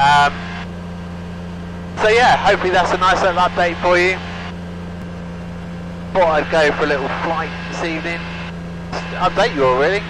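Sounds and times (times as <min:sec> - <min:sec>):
aircraft engine and propeller drone: 0:00.0 - 0:10.0.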